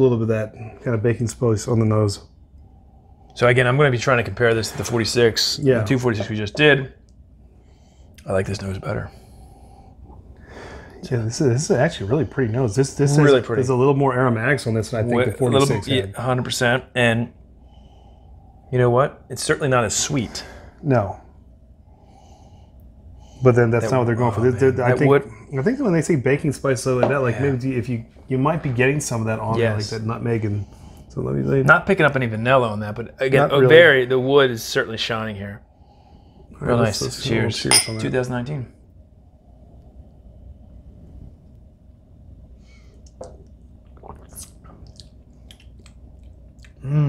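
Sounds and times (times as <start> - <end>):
low room hum: 0.0 - 47.0
lip smacks and mouth clicks: 43.0 - 46.8
person saying mmm: 46.7 - 47.0.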